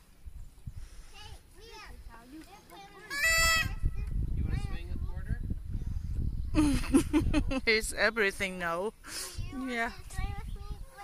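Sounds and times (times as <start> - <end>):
child squealing: 3.1 - 4.0
wind on microphone: 3.2 - 8.7, 9.3 - 11.0.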